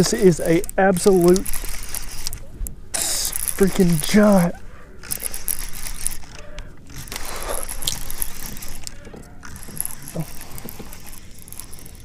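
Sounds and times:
fishing reel gear whir: 0.0s - 12.0s.

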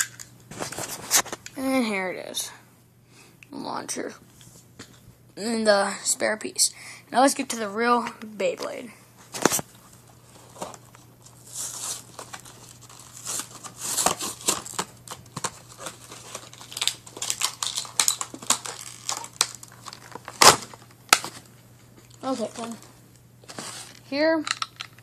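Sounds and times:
plastic packaging crinkling and tearing: 9.3s - 25.0s.

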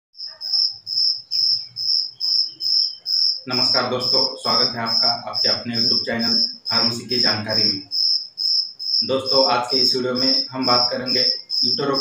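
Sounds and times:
cricket chirping: 0.2s - 12.0s.

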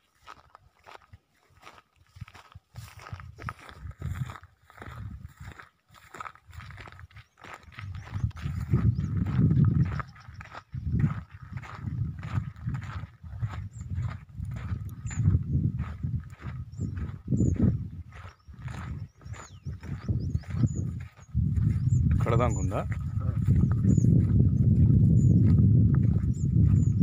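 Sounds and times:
wind buffeting microphone: 2.1s - 27.0s.

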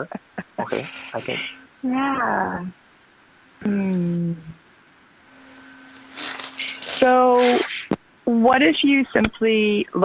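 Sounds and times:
drawn-out spoken syllable: 0.0s - 2.7s
faint steady tone: 0.0s - 10.0s.

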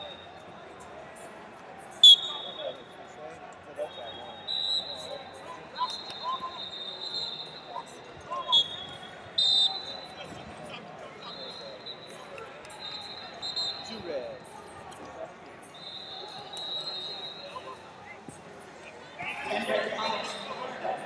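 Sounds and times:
distant crowd voices and shouts: 0.0s - 21.0s.

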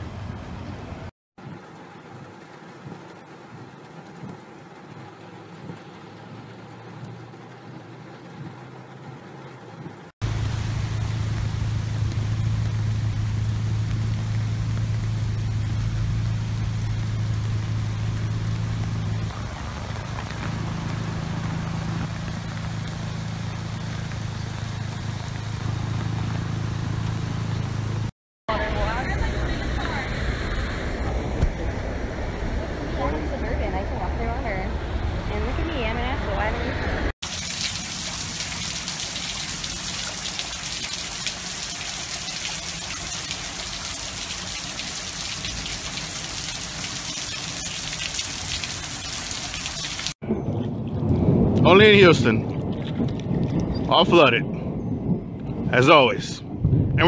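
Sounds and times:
road noise: 0.0s - 57.0s
rain heard inside car: 0.9s - 30.1s, 35.3s - 50.2s
loud low hum: 10.2s - 47.0s, 56.4s - 57.0s.

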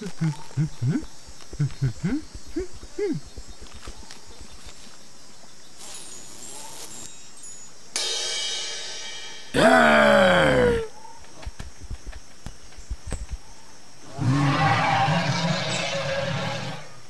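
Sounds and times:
person making dinosaur roars: 9.6s - 10.9s.

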